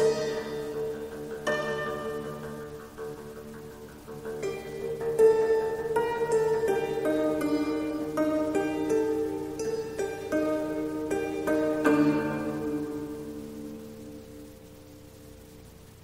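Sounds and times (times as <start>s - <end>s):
zither slow melody: 0.0s - 16.0s.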